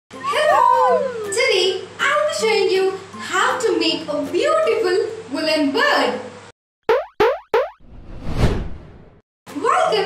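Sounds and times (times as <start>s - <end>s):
cartoon boing: 0.6s - 1.4s, 6.9s - 7.8s
whoosh: 7.8s - 9.2s.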